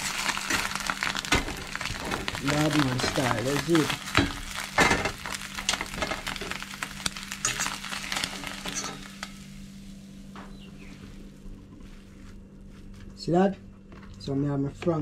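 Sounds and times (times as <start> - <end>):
egg sizzling in oil: 0.0 - 12.5
steady low hum: 0.0 - 15.0.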